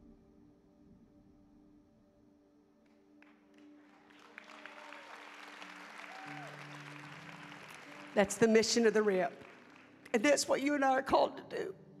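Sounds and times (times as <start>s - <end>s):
soft music of held chords: 0.0s - 12.0s
audience applause: 3.2s - 10.5s.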